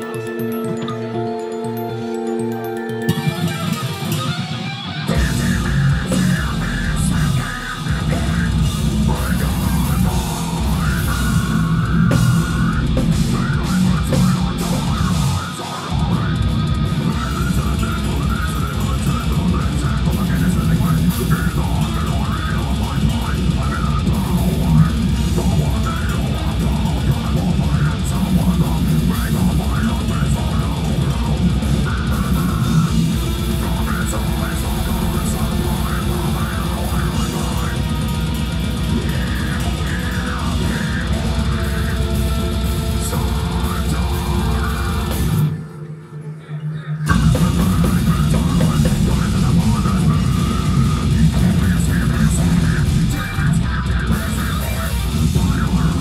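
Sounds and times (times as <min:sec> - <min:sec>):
drum kit: 0:00.0 - 0:45.6, 0:47.1 - 0:56.0
distorted electric guitars: 0:00.0 - 0:56.0.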